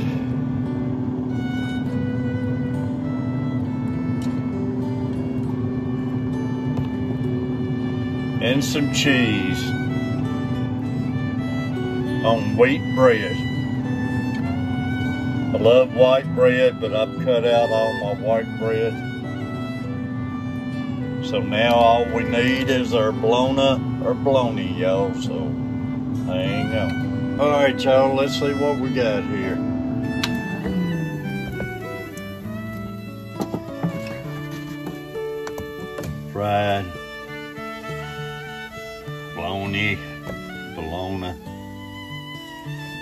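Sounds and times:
background music with held notes: 0.0 - 43.0
fiddle playing slow melody: 0.0 - 43.0
steady low tone: 0.0 - 43.0.

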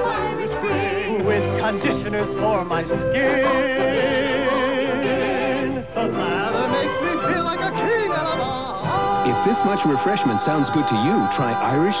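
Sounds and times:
backing music: 0.0 - 12.0
man singing a jingle: 6.0 - 12.0.

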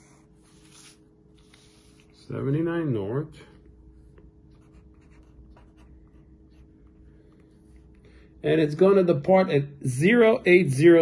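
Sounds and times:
pencil scratching on paper: 4.5 - 6.7.

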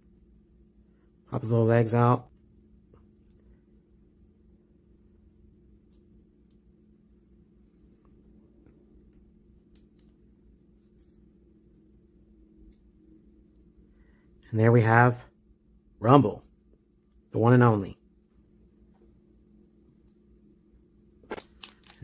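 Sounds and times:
low steady hum: 0.0 - 22.0.

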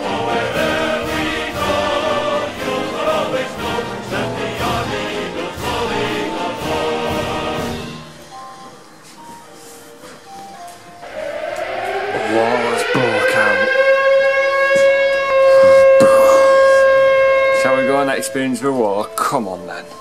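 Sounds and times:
music: 0.0 - 11.6, 15.3 - 20.0
air-raid siren winding up: 11.0 - 18.6.

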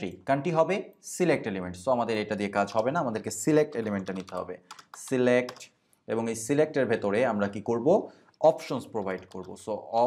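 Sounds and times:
man talking: 0.0 - 10.0
typing on computer keyboard: 3.6 - 5.7, 9.0 - 9.7.

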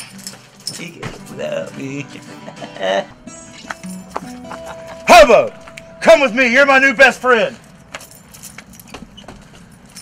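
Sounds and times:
acoustic guitar playing: 0.0 - 8.0.

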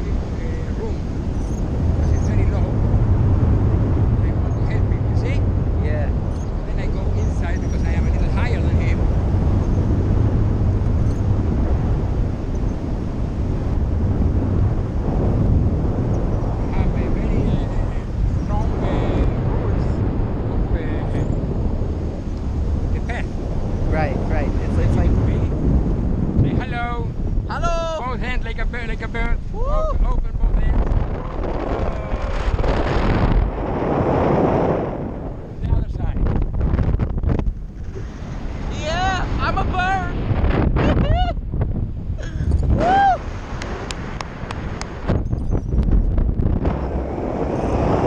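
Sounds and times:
wind rumbling on microphone: 0.0 - 48.0.

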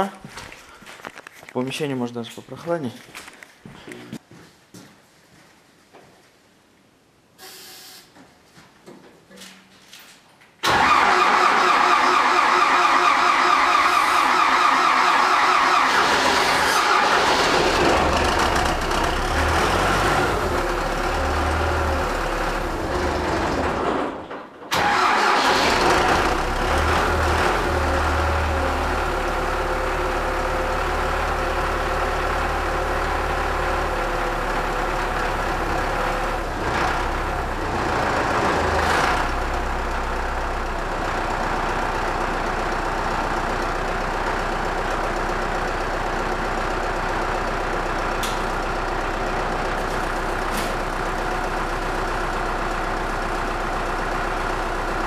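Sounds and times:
diesel engine running: 10.6 - 23.9, 24.7 - 55.0
tractor engine cranking: 10.6 - 24.1, 24.7 - 28.2.

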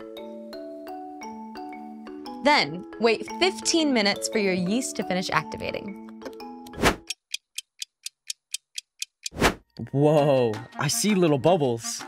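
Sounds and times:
background music: 0.0 - 7.4, 9.3 - 12.0
clock ticking: 7.0 - 9.8.

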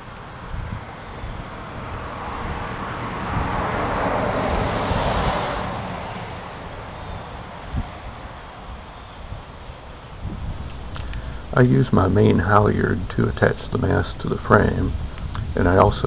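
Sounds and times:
wind rumble on microphone: 0.0 - 16.0
vehicle passing by: 0.3 - 9.4, 10.1 - 16.0.

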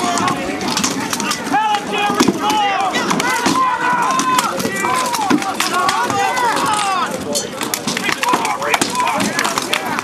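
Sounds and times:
men shouting: 0.0 - 7.3
rattan weapons cracking on shields: 0.0 - 10.0.

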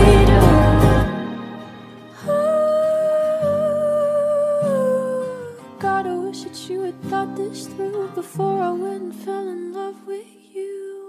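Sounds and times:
soft guitar chords: 0.0 - 10.2.

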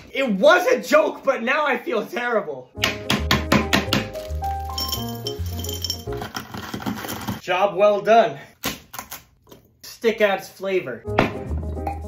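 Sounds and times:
hard candy smashing and clinking: 3.8 - 7.4
background music with bass: 11.0 - 12.0.

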